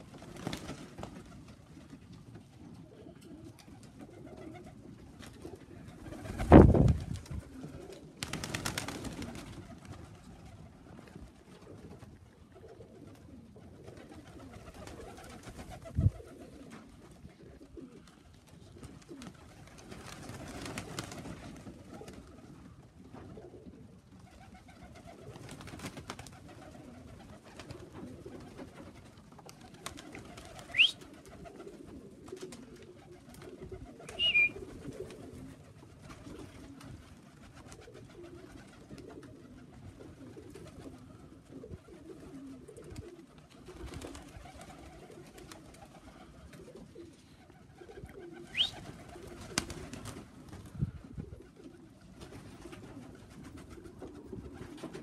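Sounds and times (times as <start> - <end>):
pigeons cooing: 0.0 - 55.0.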